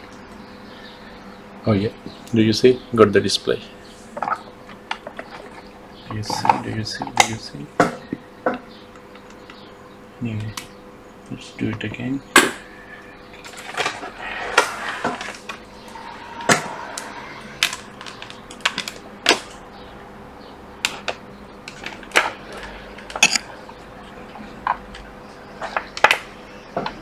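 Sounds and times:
faint steady hum: 0:00.0 - 0:27.0.

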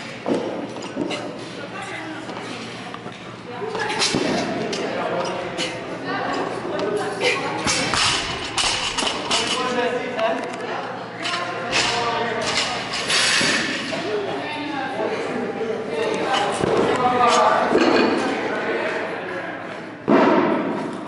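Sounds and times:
voices talking and calling out: 0:00.7 - 0:20.0.

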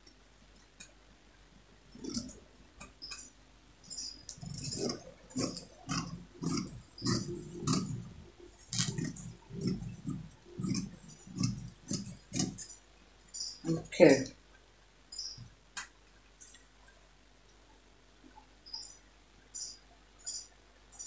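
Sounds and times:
scissors cutting fabric: 0:08.7 - 0:12.8.

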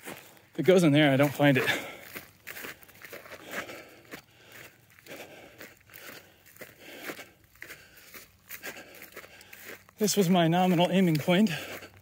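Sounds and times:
footsteps crunching on dry grass: 0:00.0 - 0:12.0.

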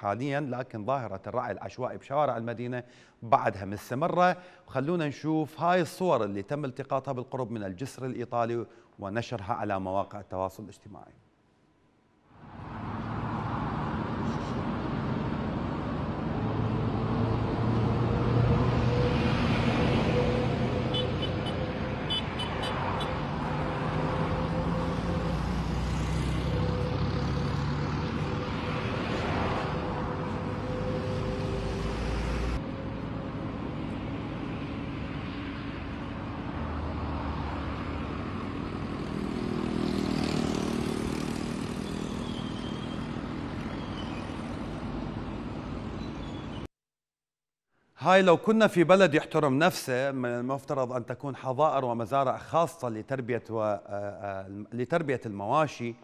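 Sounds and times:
engine and road noise: 0:11.6 - 0:46.7
vehicles passing: 0:12.3 - 0:46.7.

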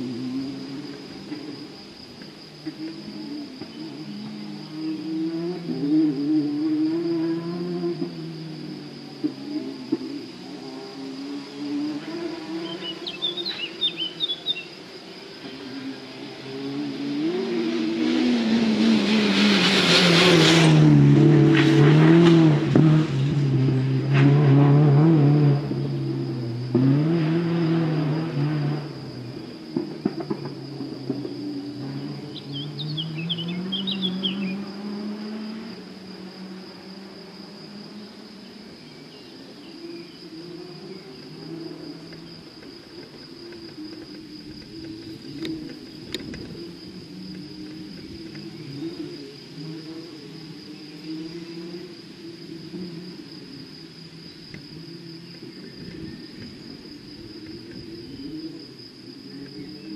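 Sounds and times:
crickets chirring: 0:00.0 - 0:59.9
rally car engine at high revs: 0:02.6 - 0:14.6, 0:15.2 - 0:59.9.

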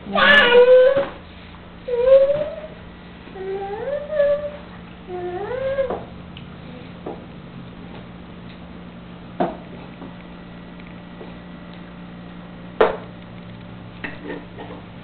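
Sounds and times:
toddler vocalizing: 0:00.1 - 0:01.1.

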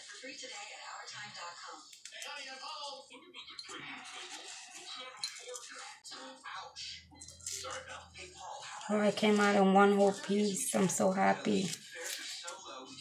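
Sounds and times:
television speech and music: 0:00.0 - 0:13.0.

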